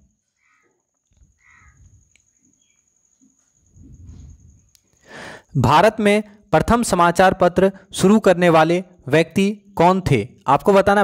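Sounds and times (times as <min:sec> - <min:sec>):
bird calling: 0:00.3 - 0:02.8.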